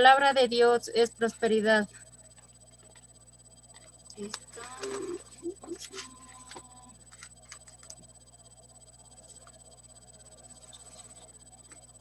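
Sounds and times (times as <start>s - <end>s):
brief steady tone: 3.4s - 12.0s
faint indistinct voice: 4.2s - 6.9s.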